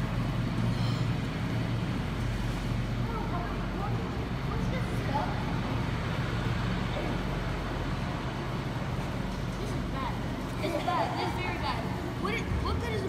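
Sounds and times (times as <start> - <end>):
low hum of hall room noise: 0.0 - 13.0.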